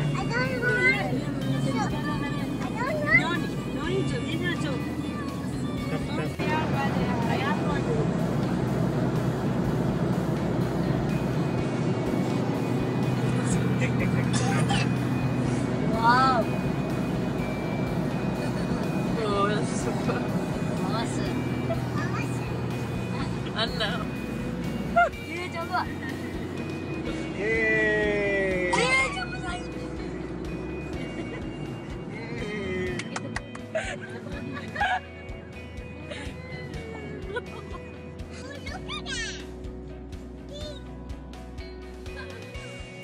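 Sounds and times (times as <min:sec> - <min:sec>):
music playing: 0:00.0 - 0:43.0
road and engine noise in car: 0:00.0 - 0:43.0.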